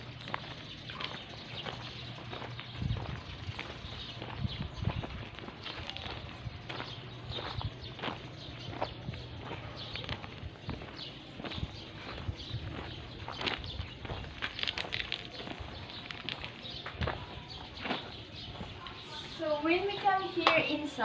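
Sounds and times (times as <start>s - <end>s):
footsteps on gravel: 0.0s - 20.8s.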